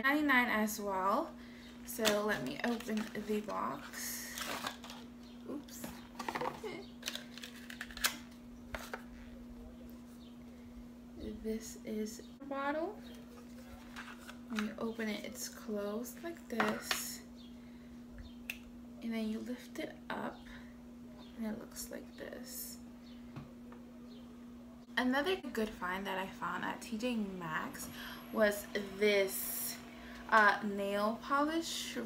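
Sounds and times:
steady low hum: 0:00.0 - 0:32.0.

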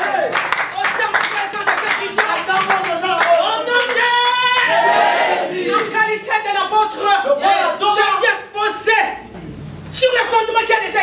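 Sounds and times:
hands clapping: 0:00.0 - 0:04.8.

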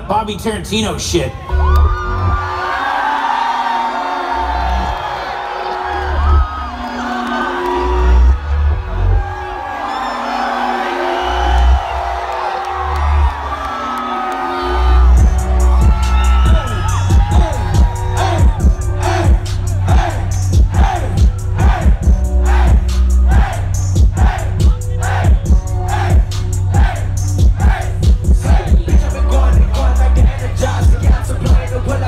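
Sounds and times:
loud music with heavy bass: 0:00.0 - 0:32.0
crowd whooping and cheering: 0:01.3 - 0:32.0.

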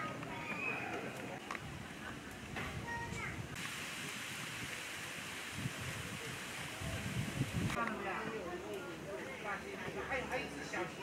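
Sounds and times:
rushing hiss of background noise: 0:00.0 - 0:11.0.

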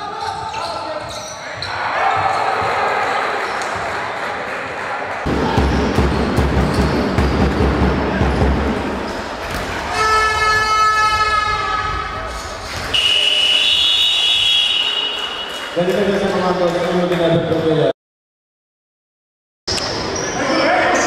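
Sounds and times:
crowd noise: 0:00.0 - 0:17.9, 0:19.7 - 0:21.0
horn blowing: 0:09.9 - 0:12.0, 0:12.9 - 0:15.6
shrill high whistle: 0:12.9 - 0:15.6.

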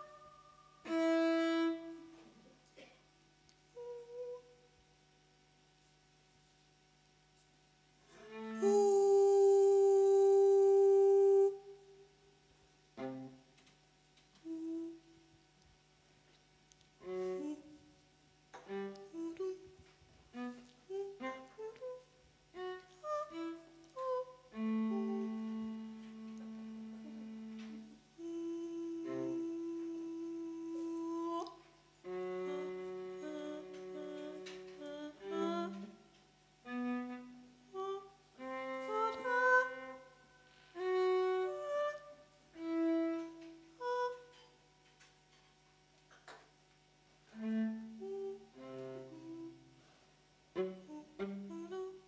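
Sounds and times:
violin phrases: 0:00.0 - 0:02.5, 0:08.0 - 0:12.0, 0:14.4 - 0:15.2, 0:17.0 - 0:44.4, 0:47.3 - 0:49.8, 0:50.5 - 0:52.0
woman humming a soft note: 0:00.0 - 0:02.9, 0:03.7 - 0:04.7, 0:08.2 - 0:12.1, 0:14.4 - 0:15.3, 0:17.0 - 0:18.0, 0:18.6 - 0:36.0, 0:36.6 - 0:40.0, 0:40.8 - 0:44.4, 0:47.3 - 0:49.7, 0:50.6 - 0:52.0.

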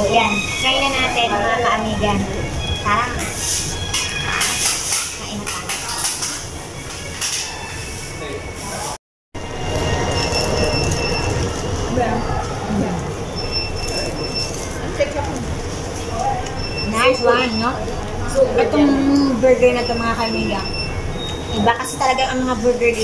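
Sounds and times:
short high electronic tones: 0:09.4 - 0:14.8.

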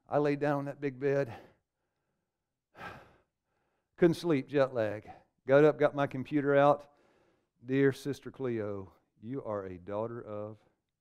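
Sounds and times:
man sighing: 0:02.8 - 0:03.2.

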